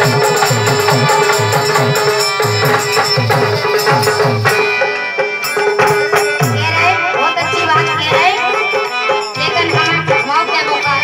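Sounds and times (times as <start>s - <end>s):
drum beat: 0.0s - 10.4s
jingling percussion: 0.0s - 11.0s.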